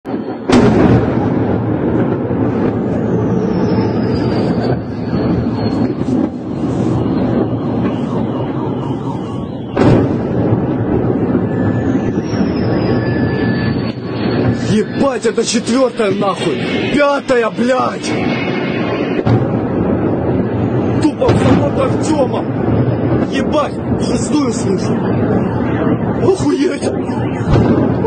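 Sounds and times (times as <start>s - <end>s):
heavy explosion blasts: 0.1s - 28.0s
rolling rumble: 0.1s - 28.0s.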